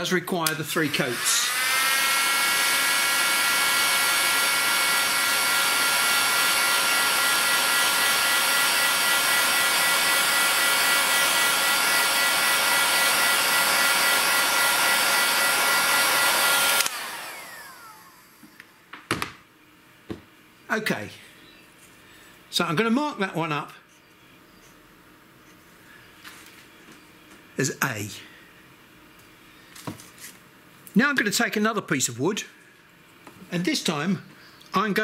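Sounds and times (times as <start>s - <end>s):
heat gun fan whining: 0.0s - 19.4s.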